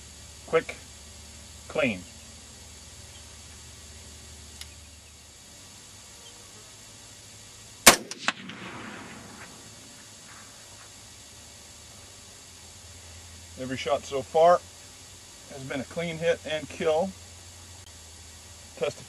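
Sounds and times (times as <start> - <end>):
rifle shot with echo: 7.8 - 10.0.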